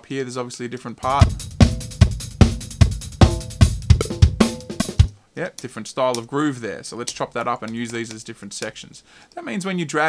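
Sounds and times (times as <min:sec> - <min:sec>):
drum kit playing a groove: 0:01.0 - 0:05.1.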